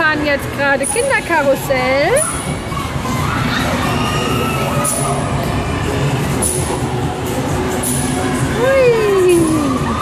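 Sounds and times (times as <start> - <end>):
children shouting: 2.2 - 5.4.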